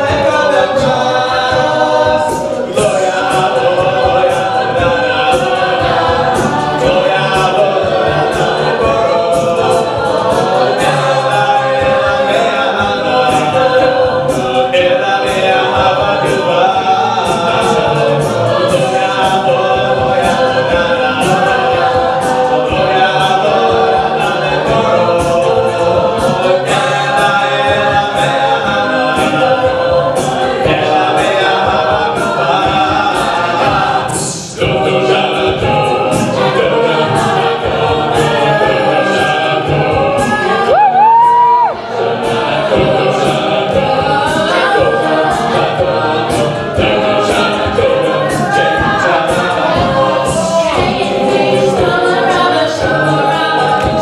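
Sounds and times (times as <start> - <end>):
a cappella group singing in harmony: 0.0 - 54.0
vocal percussion beat: 0.0 - 54.0.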